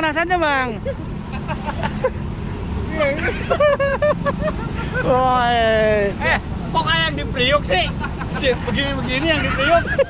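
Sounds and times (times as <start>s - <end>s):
people's voices: 0.0s - 10.0s
vehicle engine idling: 0.0s - 10.0s.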